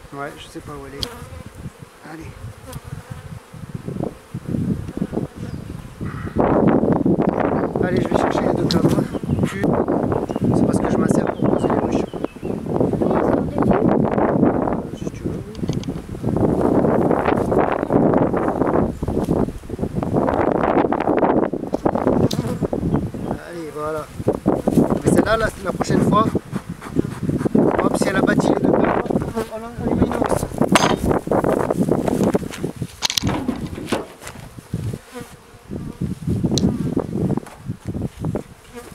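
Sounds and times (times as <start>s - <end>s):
honeybees buzzing: 0.0s - 38.9s
wind buffeting microphone: 0.0s - 38.9s
bee passing with wavering hum: 1.1s - 7.7s
soft low bumps: 24.1s - 35.1s.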